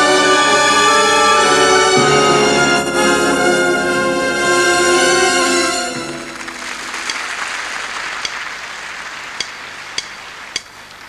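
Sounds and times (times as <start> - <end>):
audience applauding: 2.4 - 11.0
sharp clicks: 7.0 - 7.4, 8.2 - 8.5, 9.4 - 11.0.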